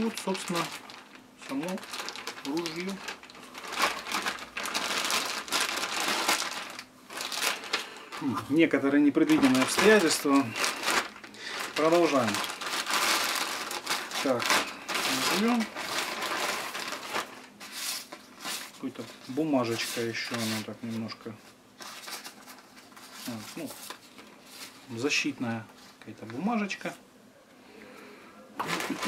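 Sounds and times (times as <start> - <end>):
plastic bag crinkling: 0.0 - 26.6, 28.6 - 29.0.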